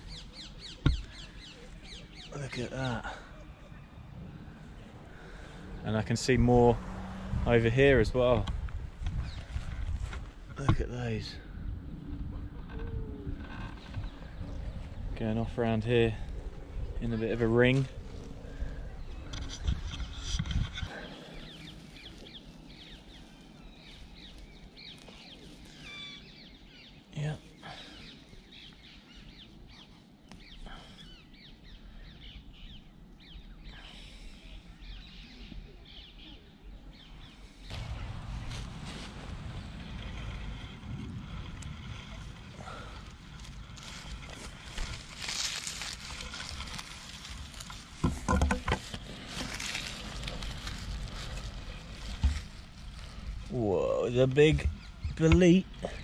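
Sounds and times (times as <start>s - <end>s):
low rumble: 0.0s - 26.6s, 36.6s - 56.0s
rustling through grass: 16.4s - 26.7s, 37.2s - 56.0s.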